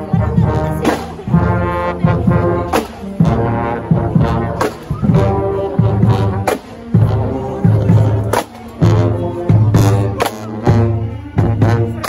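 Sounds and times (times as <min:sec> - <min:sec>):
marching band brass playing: 0:00.0 - 0:12.0.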